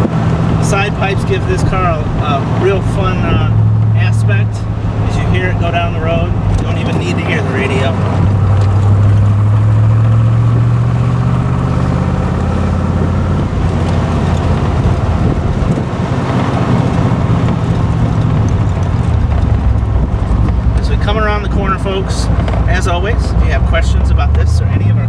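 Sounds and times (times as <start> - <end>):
car engine running: 0.0 - 25.0.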